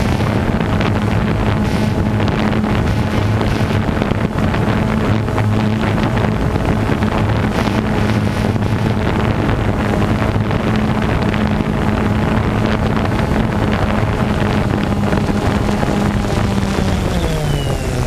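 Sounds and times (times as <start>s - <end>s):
motor droning: 0.0s - 18.0s
wind buffeting microphone: 0.0s - 18.0s.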